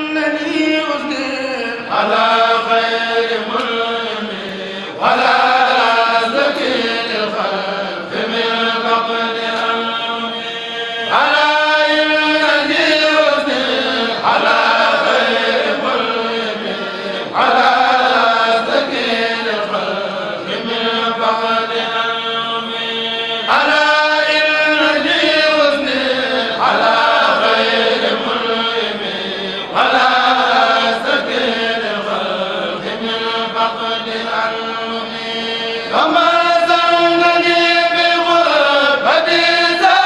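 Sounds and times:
men chanting together: 0.0 - 40.0.

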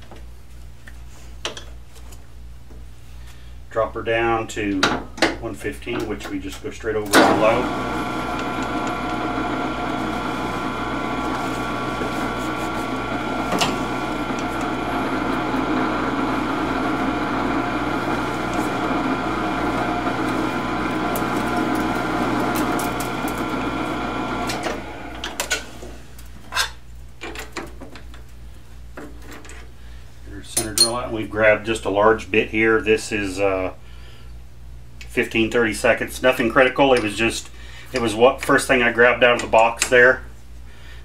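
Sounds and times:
lathe motor humming: 7.2 - 26.0.

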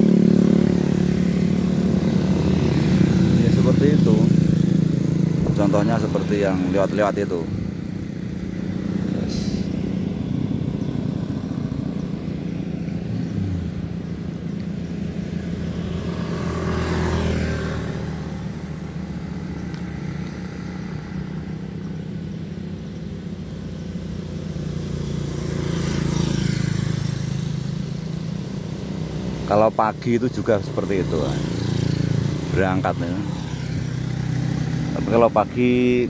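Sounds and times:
motorcycles passing: 0.0 - 36.0.

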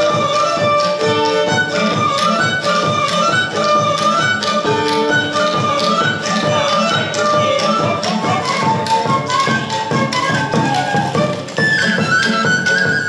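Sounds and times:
high flute melody: 0.0 - 13.0.

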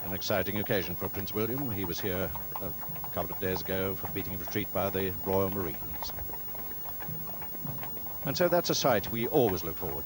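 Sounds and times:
horse hooves clip-clopping: 0.0 - 10.0
low background noise: 0.0 - 10.0.

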